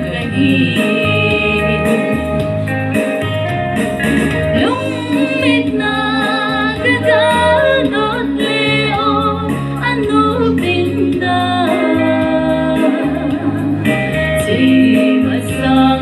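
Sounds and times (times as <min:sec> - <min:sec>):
woman singing: 0:00.0 - 0:02.7, 0:04.2 - 0:16.0
instrumental accompaniment: 0:00.0 - 0:16.0.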